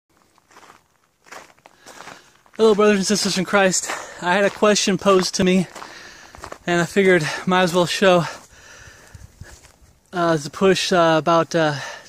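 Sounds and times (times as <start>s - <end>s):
soft footsteps: 0.1s - 7.4s, 8.2s - 10.1s.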